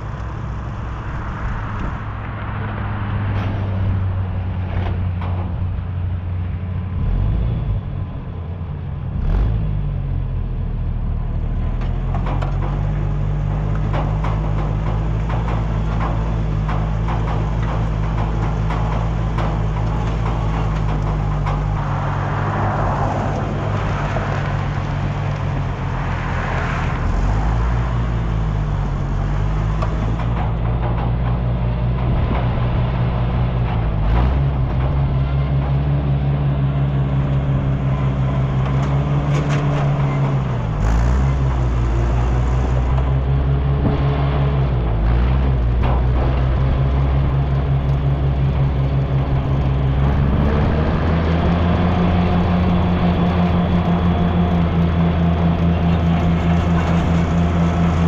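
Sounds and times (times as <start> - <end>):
tractor engine running: 0.0 - 58.0
towed grain drill rattling: 11.1 - 58.0.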